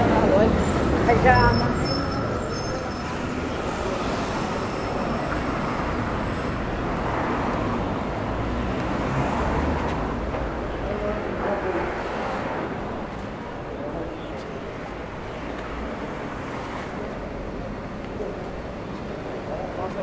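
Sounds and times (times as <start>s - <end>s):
passersby talking: 0.0s - 20.0s
traffic rumble: 0.0s - 20.0s.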